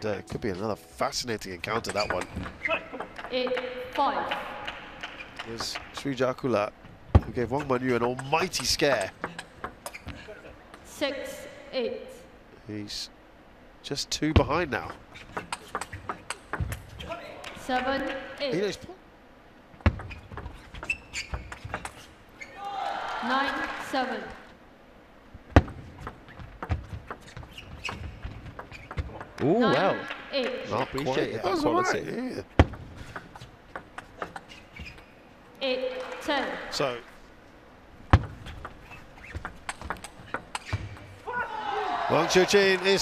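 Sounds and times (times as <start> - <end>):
shoe squeak: 1.7 - 3.1, 7.5 - 10.5, 14.9 - 17.1, 19.9 - 22.6, 26.2 - 29.2, 33.3 - 35.3, 38.2 - 41.2
ping pong ball hitting rackets and table: 1.8 - 6.1, 7.2 - 10.1, 14.8 - 16.9, 32.6 - 34.5, 38.1 - 41.1
footwork thuds: 6.9 - 7.6, 14.4 - 17.1, 19.8 - 22.1, 25.4 - 29.6, 32.5 - 35.0, 38.0 - 41.3
table tennis ball clicking: 15.3 - 16.8, 38.2 - 41.0.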